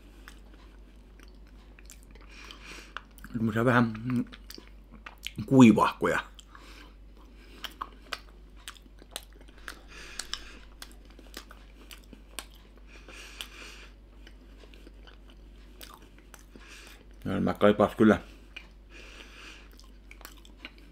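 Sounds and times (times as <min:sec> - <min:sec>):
person chewing food: 0:00.0 - 0:05.5, 0:06.3 - 0:17.3, 0:18.3 - 0:20.9
mouth clicks and smacks: 0:00.2 - 0:05.5, 0:07.5 - 0:13.6
soft breathing: 0:02.2 - 0:03.1, 0:06.5 - 0:08.2, 0:09.4 - 0:15.0, 0:15.6 - 0:17.1, 0:18.2 - 0:19.8.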